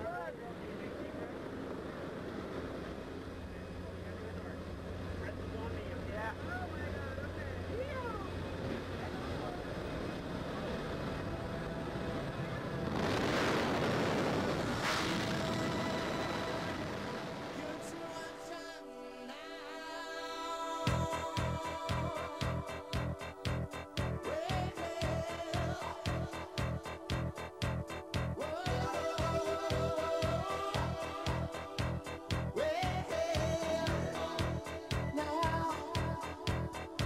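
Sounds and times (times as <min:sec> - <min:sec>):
faint voices: 0:00.0 - 0:02.4, 0:03.0 - 0:12.9
plane engine and propeller drone: 0:00.1 - 0:18.5
loud rush of wind: 0:08.3 - 0:17.9.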